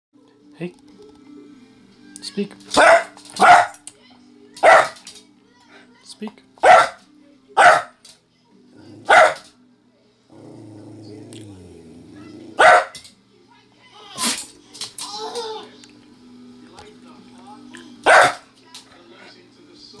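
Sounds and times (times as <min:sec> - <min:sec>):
small dog barking: 0:02.8 - 0:03.8, 0:04.6 - 0:05.0, 0:06.6 - 0:07.0, 0:07.6 - 0:08.0, 0:09.0 - 0:09.4, 0:12.6 - 0:13.0, 0:18.0 - 0:18.4.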